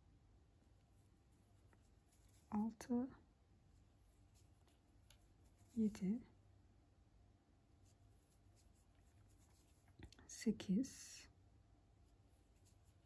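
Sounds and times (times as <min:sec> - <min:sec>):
crochet hook scratching yarn: 0:00.9 - 0:03.0, 0:04.0 - 0:06.2, 0:07.8 - 0:10.1, 0:12.0 - 0:13.0.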